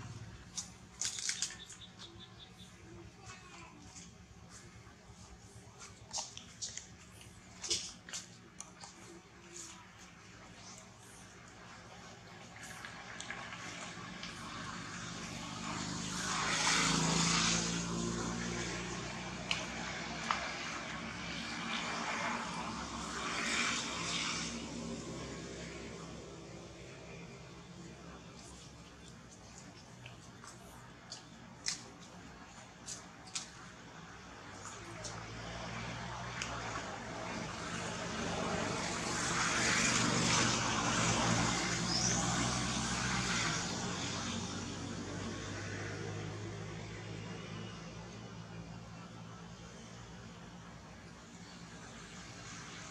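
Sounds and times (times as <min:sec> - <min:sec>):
distant vehicle passing: 0:10.5 - 0:52.9.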